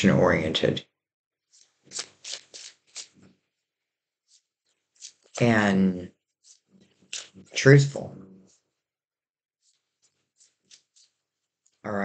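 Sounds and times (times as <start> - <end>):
cards shuffling: 1.5 - 3.4, 4.3 - 5.6, 6.4 - 7.8, 9.6 - 11.8.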